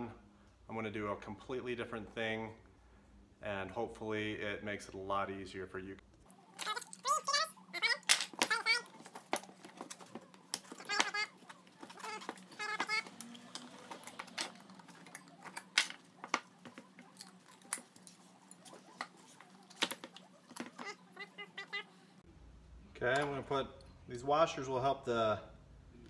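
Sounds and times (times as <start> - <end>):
high voice-like sounds: 6.6 - 9.1.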